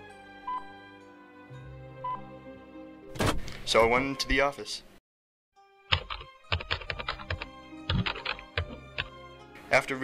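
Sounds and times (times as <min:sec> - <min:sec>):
music with held notes: 0:00.0 - 0:03.0, 0:05.6 - 0:09.8
laptop keyboard typing: 0:05.9 - 0:09.1.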